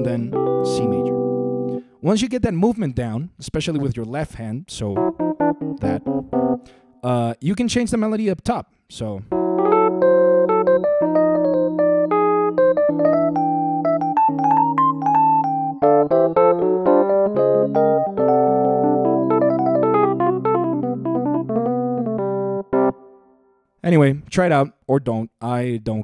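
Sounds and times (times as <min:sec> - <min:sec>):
digital piano playing jazz chords: 0:00.0 - 0:01.9, 0:04.8 - 0:06.8, 0:09.3 - 0:23.2.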